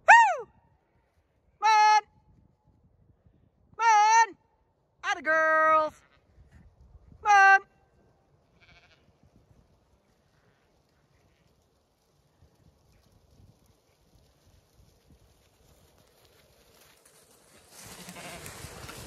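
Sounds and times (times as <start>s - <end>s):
sheep bleating: 8.5s - 9.1s, 17.8s - 18.6s
hooves thudding on grass: 9.2s - 19.0s.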